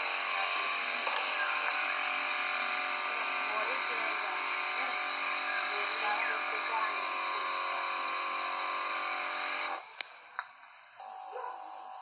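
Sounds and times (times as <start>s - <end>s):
sprayer pump high-pitched buzz: 0.0s - 10.0s, 11.0s - 12.0s.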